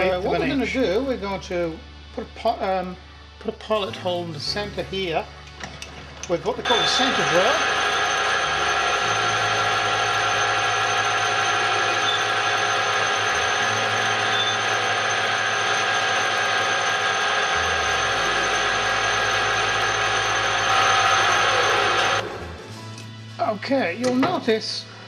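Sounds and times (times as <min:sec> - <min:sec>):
drill boring into steel bar: 0:06.6 - 0:22.2
metal lathe humming and whining: 0:06.6 - 0:22.6.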